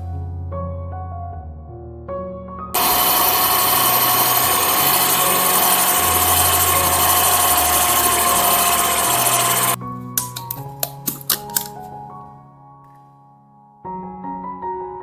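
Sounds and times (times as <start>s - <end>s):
stand mixer motor whine: 2.8s - 9.8s.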